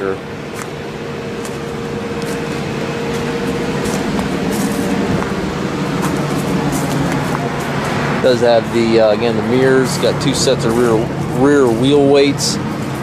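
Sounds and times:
tractor diesel engine idling: 0.0 - 13.0.

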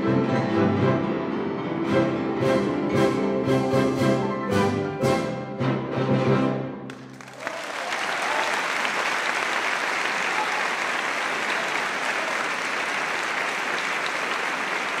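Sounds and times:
orchestral chord: 0.0 - 6.8
audience applauding: 6.9 - 15.0.

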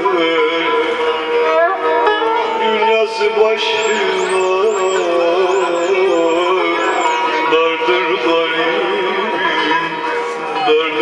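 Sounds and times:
man singing folk song: 0.0 - 1.5, 2.4 - 11.0
long-necked lute playing: 0.0 - 11.0.

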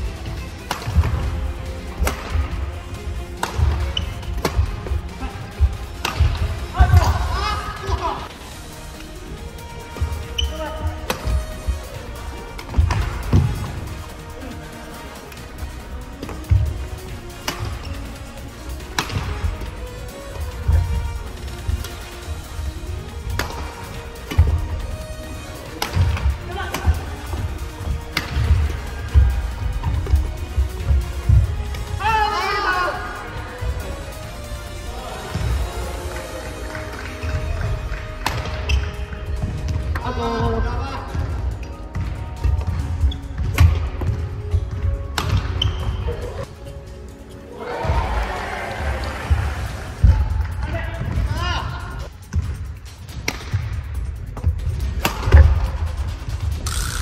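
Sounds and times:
racket hitting shuttlecock: 0.0 - 7.9, 10.0 - 11.9, 12.5 - 13.9, 16.2 - 18.0, 18.7 - 22.1, 23.2 - 32.0, 37.9 - 40.1, 41.2 - 46.2, 53.1 - 53.7, 54.4 - 55.6
background music: 0.0 - 57.0
footsteps on wooden floor: 9.8 - 14.2, 19.1 - 22.3, 23.4 - 32.0, 37.2 - 46.1.

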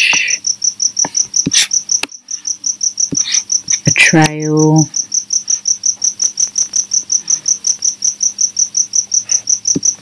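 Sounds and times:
cricket chirping: 0.0 - 10.0.

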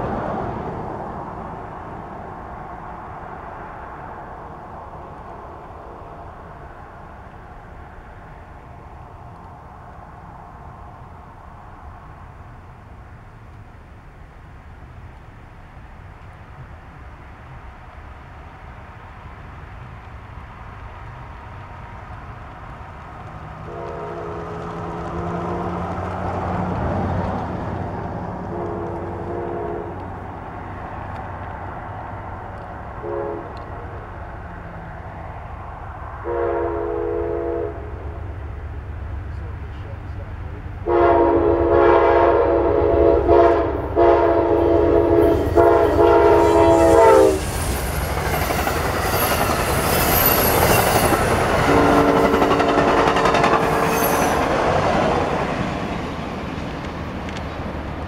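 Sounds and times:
train wheel and rail noise: 0.0 - 58.0
locomotive air horn: 23.7 - 25.8, 28.4 - 30.1, 33.0 - 33.8, 36.2 - 38.0, 40.8 - 47.8, 51.6 - 54.5.

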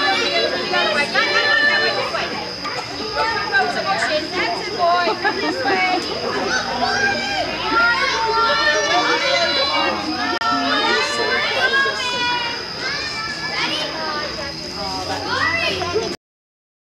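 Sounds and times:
children shouting and chattering: 0.0 - 16.2.

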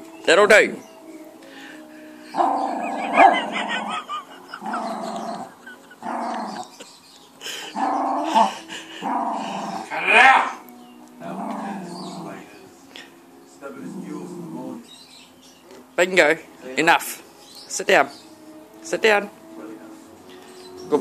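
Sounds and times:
small dog growling and barking: 2.4 - 4.0, 4.6 - 6.7, 7.7 - 10.6, 11.2 - 12.4.

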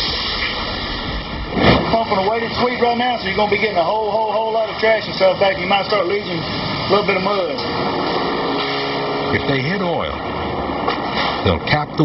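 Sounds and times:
drilling rig machinery noise: 0.0 - 12.0.

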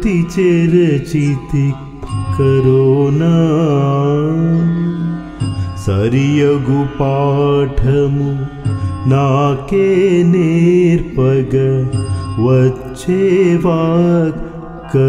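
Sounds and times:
accompanying music: 0.0 - 15.0
man singing ornamented notes: 0.0 - 15.0.

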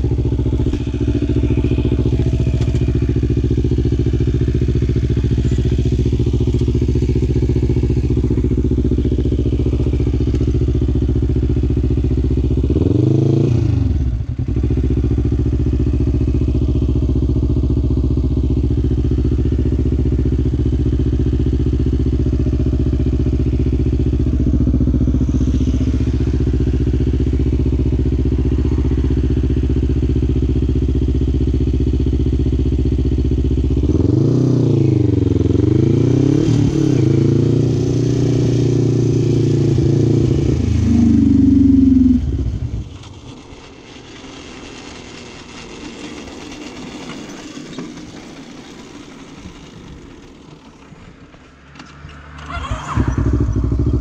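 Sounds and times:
quad bike engine idling: 0.0 - 54.0.

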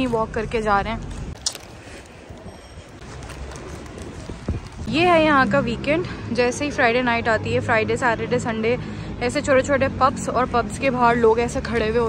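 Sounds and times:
woman speaking: 0.0 - 1.1, 4.9 - 12.0
busy city street noise: 0.0 - 12.0.

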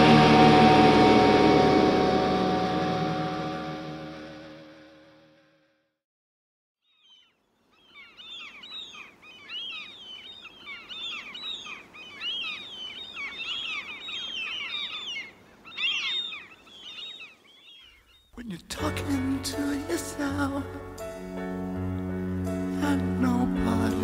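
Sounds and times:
final musical note: 0.0 - 5.7
chorus of chirping whistling calls: 6.9 - 18.4.

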